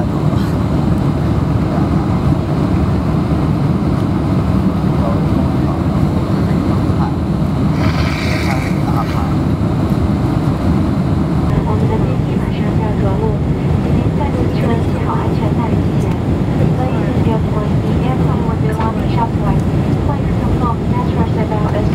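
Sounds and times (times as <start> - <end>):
jet engines roaring in cabin: 0.0 - 21.9
rushing air: 6.7 - 11.5.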